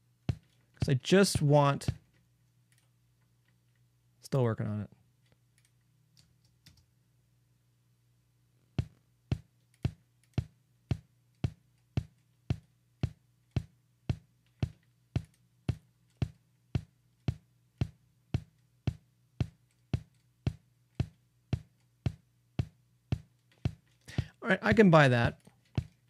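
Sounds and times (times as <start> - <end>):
kick drum hits: 8.8 - 23.8.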